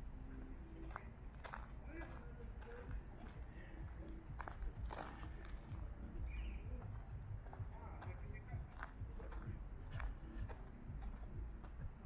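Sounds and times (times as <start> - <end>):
faint distant voices: 0.0 - 12.0
footsteps on dirt path: 0.0 - 12.0
low outdoor rumble: 0.0 - 12.0.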